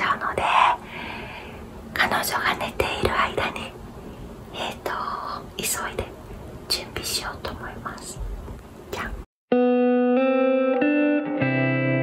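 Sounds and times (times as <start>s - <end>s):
woman whispering: 0.0s - 0.8s, 1.9s - 3.8s, 4.5s - 8.2s, 8.9s - 9.3s.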